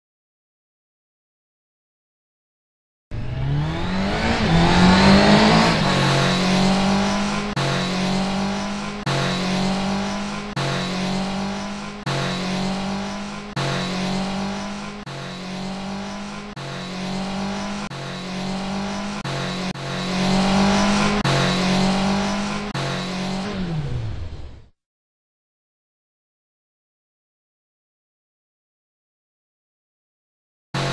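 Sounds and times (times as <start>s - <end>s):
motorcycle engine revving: 3.1s - 24.7s.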